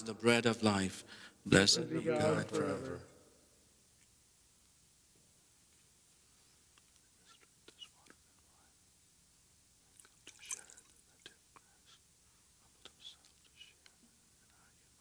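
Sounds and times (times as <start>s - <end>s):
liquid pouring: 9.9s - 11.0s
glass cruets clinking: 10.3s - 10.9s.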